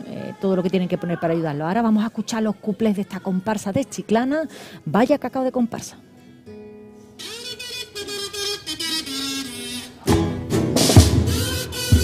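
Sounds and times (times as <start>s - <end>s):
acoustic guitars playing: 4.5s - 12.0s.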